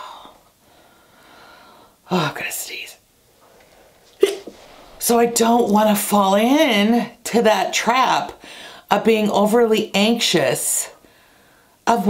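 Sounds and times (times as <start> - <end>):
woman sneezing: 4.2 - 4.5.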